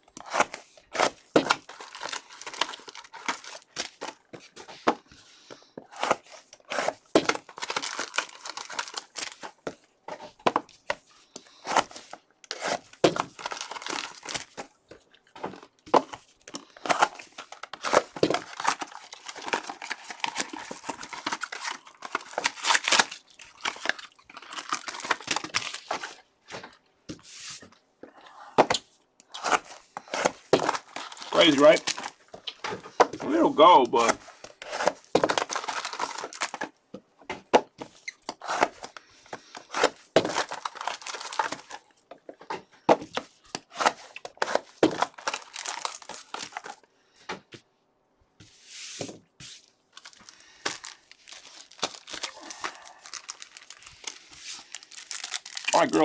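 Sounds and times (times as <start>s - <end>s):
foil wrappers tearing and crinkling: 0.2s - 4.5s, 5.9s - 9.6s, 11.4s - 14.8s, 15.5s - 26.3s, 29.3s - 36.8s, 37.9s - 42.0s, 43.6s - 46.8s, 49.9s - 56.0s.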